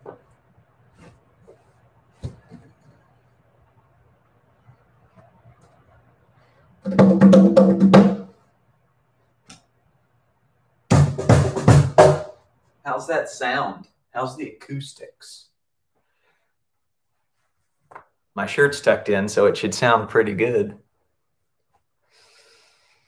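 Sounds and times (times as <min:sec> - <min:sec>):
hand drumming quick strikes: 0:06.9 - 0:08.3.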